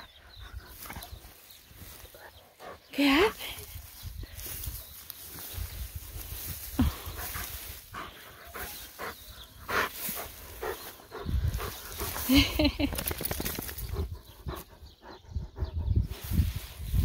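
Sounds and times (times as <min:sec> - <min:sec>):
rustle of grass and fur: 0:00.0 - 0:14.7, 0:16.0 - 0:17.0.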